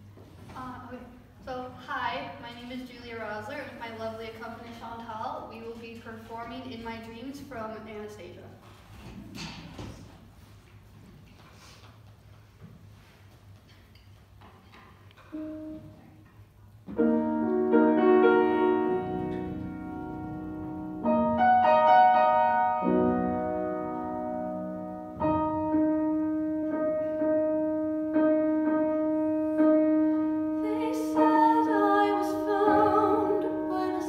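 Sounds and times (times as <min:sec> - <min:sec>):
grand piano chords: 0:15.2 - 0:34.0
person singing: 0:30.6 - 0:34.0.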